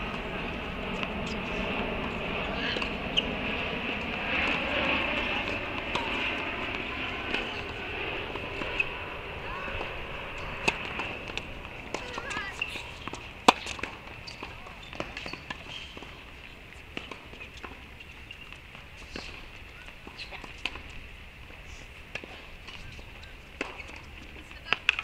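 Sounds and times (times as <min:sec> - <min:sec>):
tennis ball hit with racket: 0:10.6 - 0:16.2.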